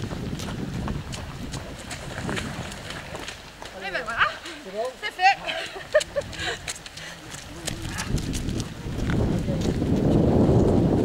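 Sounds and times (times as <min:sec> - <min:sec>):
wind rumble on microphone: 0:00.0 - 0:03.7, 0:05.8 - 0:11.0
running footsteps on muddy dirt: 0:00.0 - 0:11.0.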